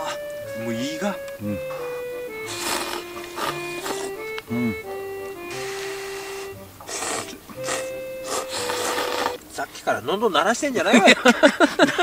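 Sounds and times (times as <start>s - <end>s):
background music: 0.0s - 9.4s
noodles being slurped: 2.5s - 4.2s, 5.5s - 9.4s.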